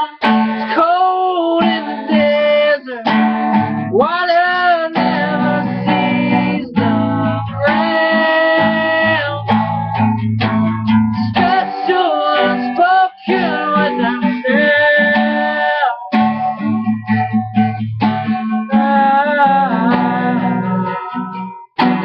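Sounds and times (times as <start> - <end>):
man singing: 0.0 - 3.3, 3.9 - 9.9, 11.0 - 16.8, 18.4 - 22.0
acoustic guitar playing: 0.0 - 22.0.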